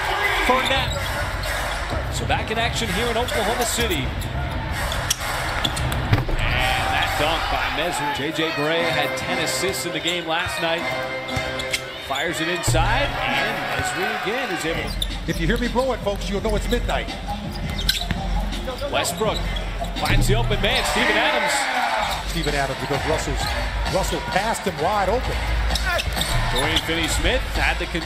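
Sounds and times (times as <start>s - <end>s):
arena crowd noise: 0.0s - 28.0s
high squeak: 17.5s - 18.2s.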